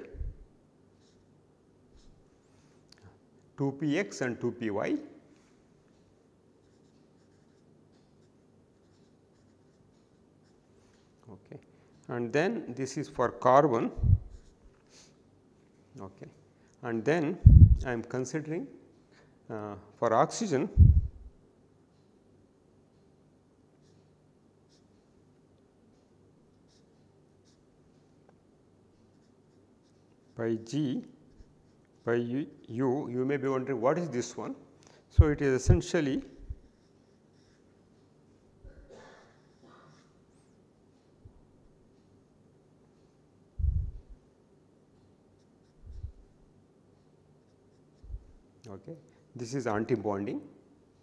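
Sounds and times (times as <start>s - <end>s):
low steady hum: 0.0s - 51.0s
marker scratching on paper: 6.6s - 11.0s.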